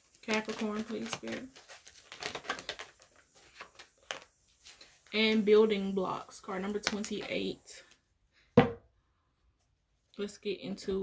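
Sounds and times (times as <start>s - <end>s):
cards being shuffled: 0.1s - 5.4s.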